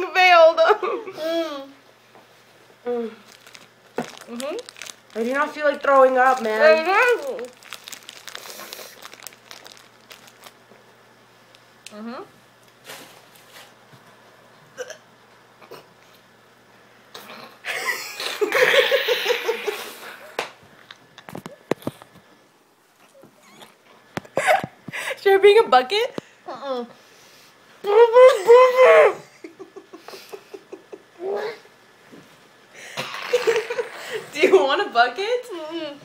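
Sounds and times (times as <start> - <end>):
plastic wrapper crinkling: 3.2 - 10.7
person gagging and retching: 33.0 - 33.8.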